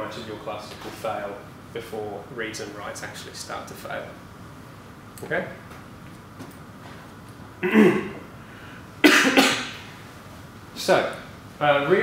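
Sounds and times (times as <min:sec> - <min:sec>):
man coughing: 0:07.6 - 0:08.2, 0:09.0 - 0:09.9.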